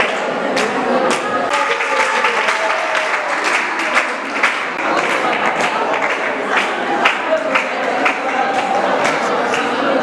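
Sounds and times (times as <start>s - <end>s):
voices: 0.0s - 10.0s
audience applauding: 1.1s - 9.8s.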